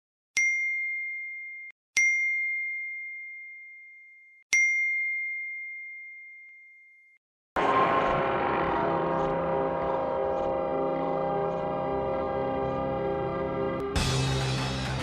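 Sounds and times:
music: 7.6s - 15.0s.

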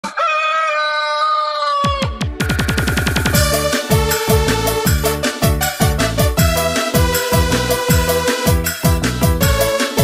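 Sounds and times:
rooster crowing: 0.0s - 2.2s
thudding drum beat: 2.2s - 9.6s.

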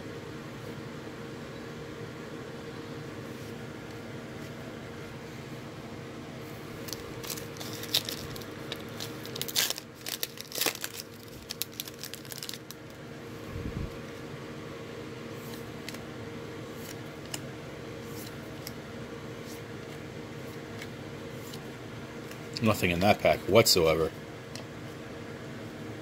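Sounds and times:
steady hum: 0.0s - 26.0s
foil pack tearing and crinkling: 6.8s - 13.0s.

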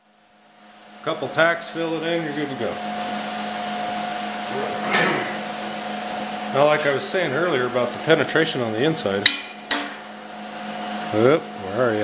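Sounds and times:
equipment hum: 0.0s - 12.0s.

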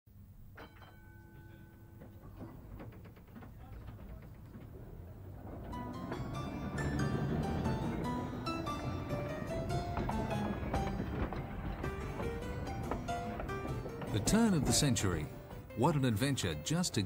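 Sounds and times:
clattering knocks: 0.5s - 15.8s
street and tram rumble: 1.4s - 17.0s
music with bright melody: 5.8s - 17.0s.

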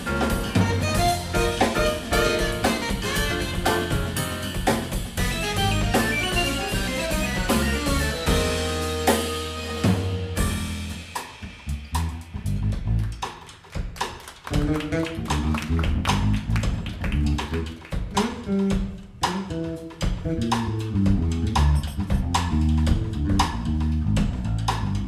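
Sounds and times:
electric bass guitar line: 0.0s - 11.0s, 11.8s - 13.2s, 14.5s - 25.0s
drum kit: 0.0s - 25.0s.

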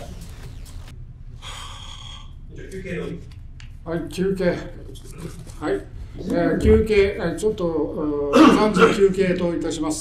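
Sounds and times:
breathy exhale: 1.4s - 2.4s
man speaking: 2.5s - 10.0s.

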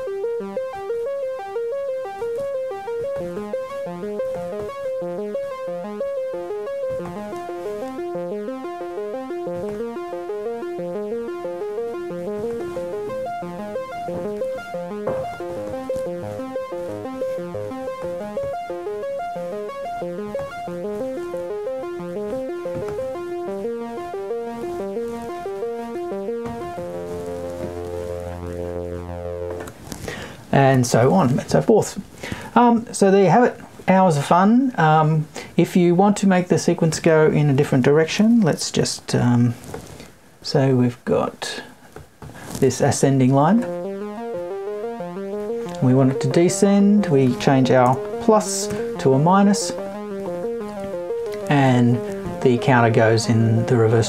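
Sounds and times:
sawtooth synth arpeggio: 0.0s - 30.2s, 43.0s - 54.0s.

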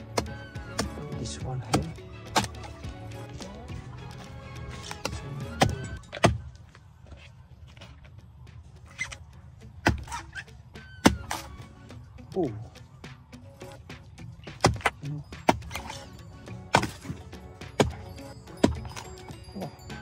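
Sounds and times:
axe chopping log: 0.0s - 6.8s, 9.8s - 11.7s, 14.4s - 19.3s
background music: 0.0s - 20.0s.

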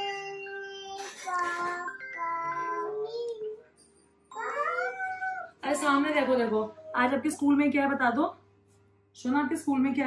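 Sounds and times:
woman speaking: 5.6s - 8.4s, 9.2s - 10.0s.

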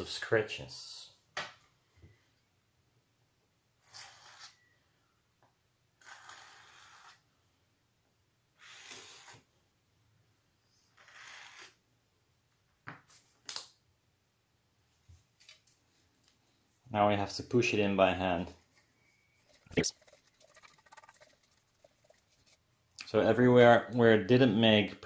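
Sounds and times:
rubbing and scraping strokes: 19.2s - 22.7s.

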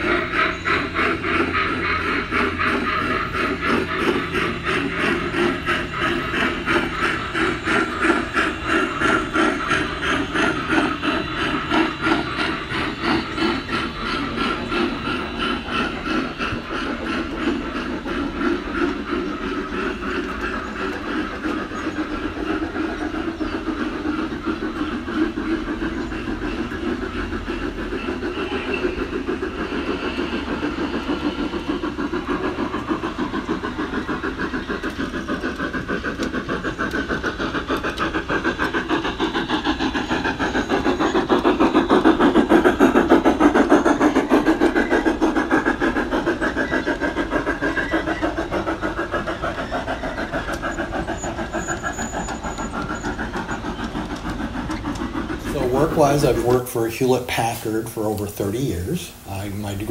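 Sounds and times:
model train rhythmic clatter: 0.0s - 59.9s.

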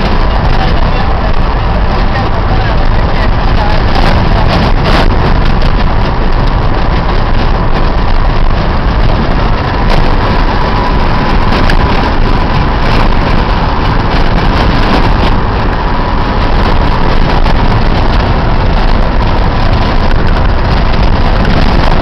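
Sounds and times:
car rumbling on gravel road: 0.0s - 22.0s.

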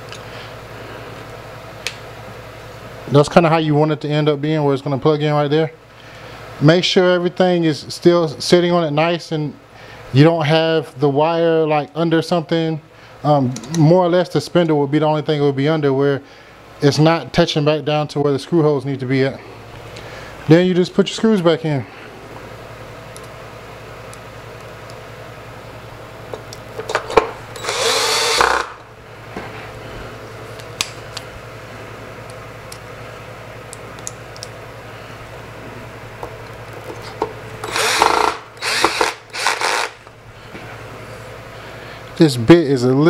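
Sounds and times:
cordless drill driving screws: 27.6s - 28.7s, 37.6s - 40.0s.

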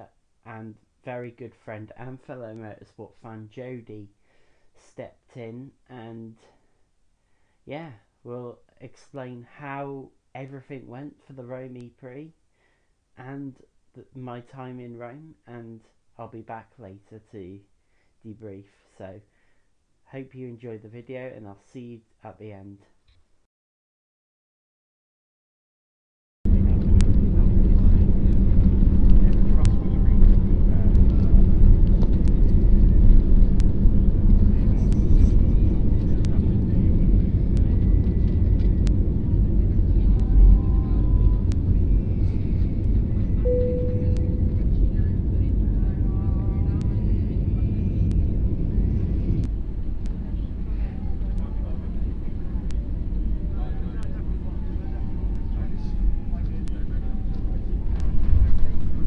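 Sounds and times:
faint voices in cabin: 26.5s - 31.6s, 34.4s - 38.7s, 39.4s - 49.4s, 50.0s - 59.0s.

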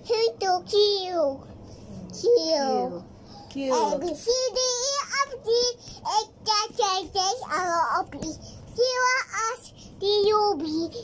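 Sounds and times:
toddler singing: 3.8s - 11.0s.

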